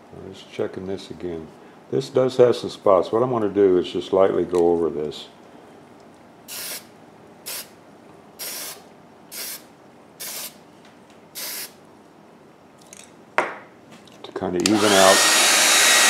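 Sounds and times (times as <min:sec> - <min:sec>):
aerosol spray bursts: 0:06.5 - 0:06.9, 0:07.5 - 0:07.7, 0:08.4 - 0:09.6, 0:10.2 - 0:10.6, 0:11.4 - 0:11.8.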